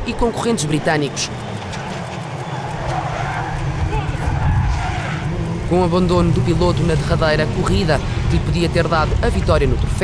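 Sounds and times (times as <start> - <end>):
race car engines rumbling: 0.0 - 10.0.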